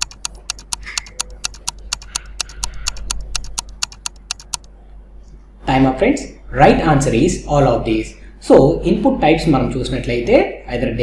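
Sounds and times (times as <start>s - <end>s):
rapid clock ticks: 0.0s - 4.7s.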